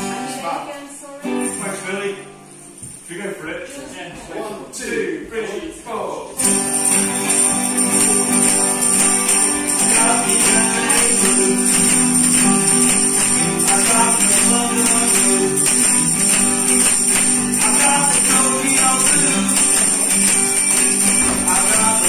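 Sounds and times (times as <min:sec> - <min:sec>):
guitars strumming blues: 0:00.0 - 0:00.4, 0:06.4 - 0:22.0
tambourine jingling: 0:01.4 - 0:03.3, 0:06.4 - 0:22.0.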